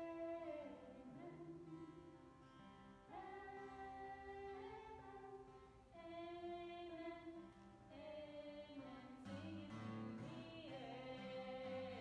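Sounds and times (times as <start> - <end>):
faint person singing: 0.0 - 2.2, 3.1 - 12.0
strummed acoustic guitar: 0.0 - 6.6, 8.8 - 12.0.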